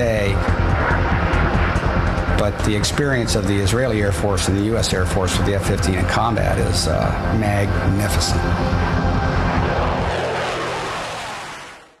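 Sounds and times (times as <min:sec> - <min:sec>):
jet engines flying overhead: 0:00.0 - 0:12.0.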